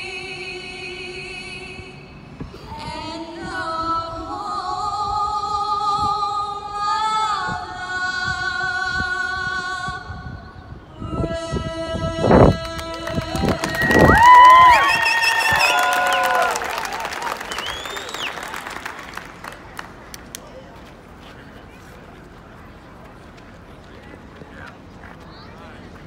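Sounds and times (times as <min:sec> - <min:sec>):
woman singing into a microphone: 0:00.0 - 0:13.8
crowd cheering and clapping: 0:12.6 - 0:20.5.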